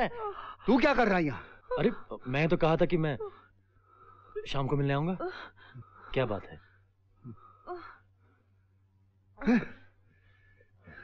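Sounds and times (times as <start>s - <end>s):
faint low room hum: 0.0s - 11.0s.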